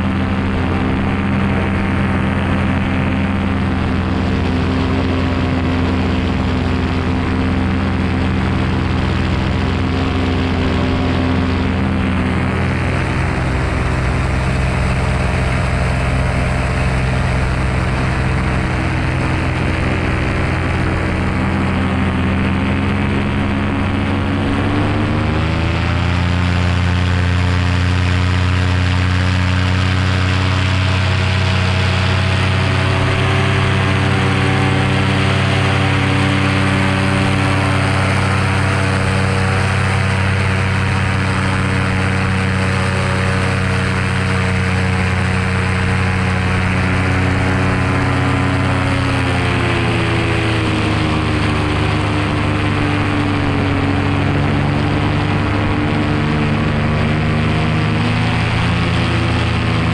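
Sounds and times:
paramotor engine and propeller: 0.0s - 59.9s.

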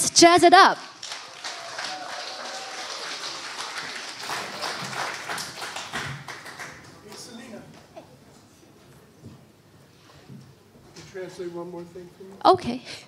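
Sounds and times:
audience applauding: 0.9s - 7.4s.

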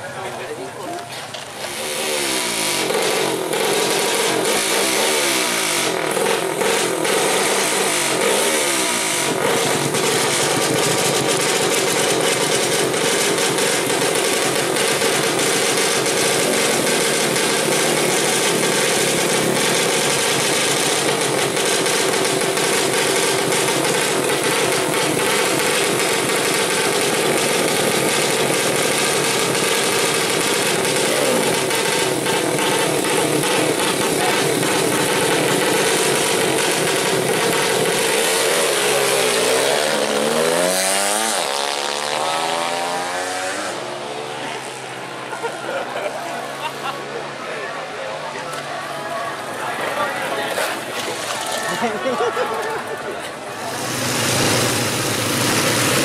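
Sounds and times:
motorcycle engines revving: 0.0s - 56.0s.

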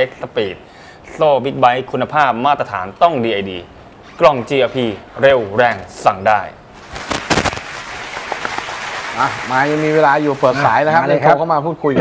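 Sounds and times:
steady hiss: 6.7s - 11.0s
sharp crackles: 6.8s - 9.8s.

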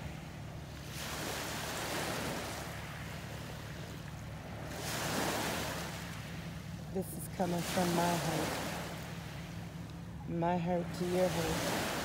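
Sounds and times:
small waves washing on shore: 0.0s - 12.0s
steady low hum: 0.0s - 12.0s.

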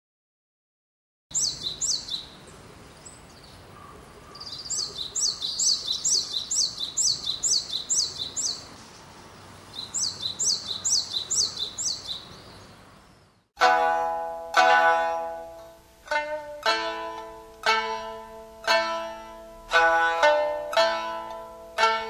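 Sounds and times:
songbird singing: 1.3s - 17.7s
soft outdoor hush: 1.3s - 22.0s
plucked string instrument: 13.6s - 22.0s.

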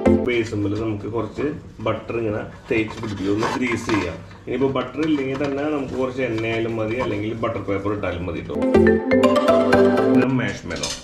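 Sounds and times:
person speaking: 0.0s - 8.7s.

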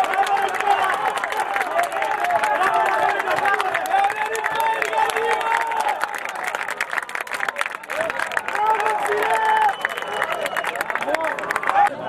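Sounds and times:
crowd noise: 0.0s - 12.0s
spectators clapping: 0.0s - 12.0s.

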